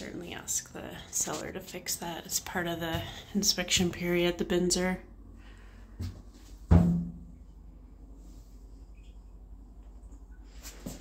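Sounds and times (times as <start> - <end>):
hollow thump with low ring: 6.7 - 7.4.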